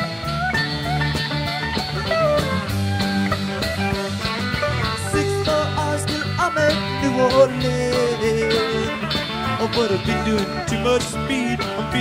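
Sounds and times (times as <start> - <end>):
country-rock band playing: 0.0 - 12.0
sliding guitar lead line: 0.0 - 12.0
person singing: 4.8 - 12.0.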